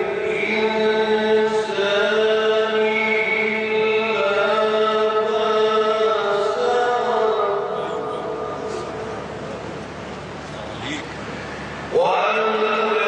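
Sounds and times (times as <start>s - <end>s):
man chanting recitation: 0.0s - 9.0s, 11.9s - 13.0s.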